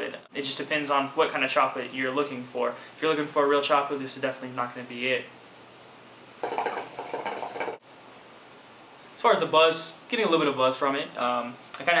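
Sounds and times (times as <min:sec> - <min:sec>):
faint room hiss: 0:00.0 - 0:12.0
hookah water bubbling: 0:06.4 - 0:07.8.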